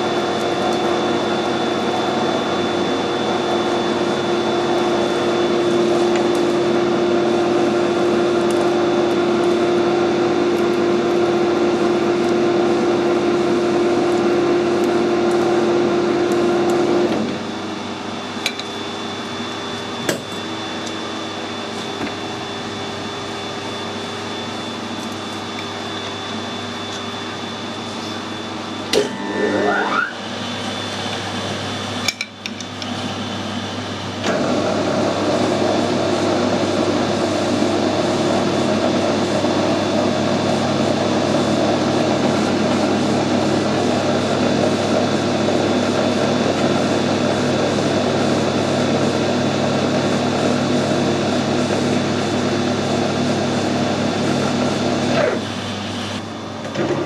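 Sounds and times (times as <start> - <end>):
metal lathe running: 0.0 - 57.0.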